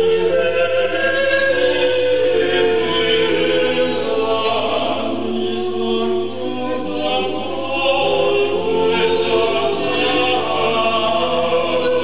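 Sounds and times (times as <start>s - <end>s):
male vocal quartet singing: 0.0s - 12.0s.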